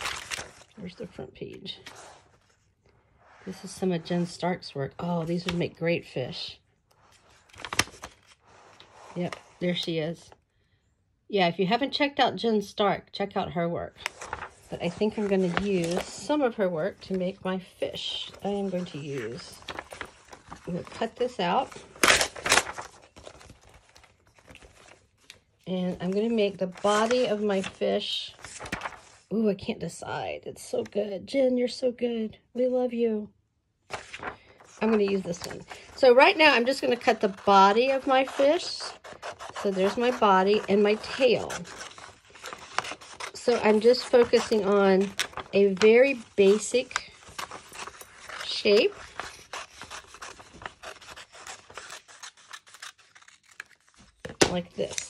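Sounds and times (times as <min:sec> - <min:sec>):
magazine paper rustling: 0:00.0 - 0:02.8, 0:07.0 - 0:09.9, 0:14.0 - 0:29.3, 0:33.9 - 0:55.0
scissors snipping paper: 0:36.5 - 0:55.0.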